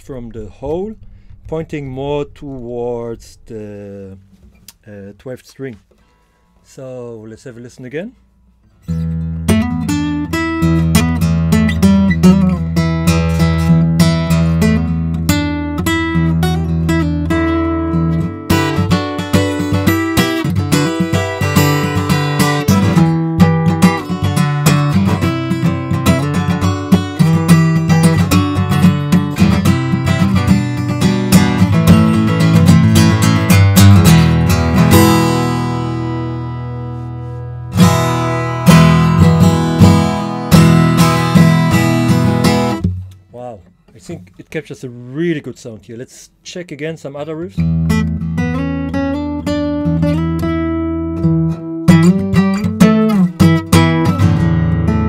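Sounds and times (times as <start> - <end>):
acoustic guitar playing: 0.0 - 4.9, 8.3 - 44.2, 47.6 - 55.0.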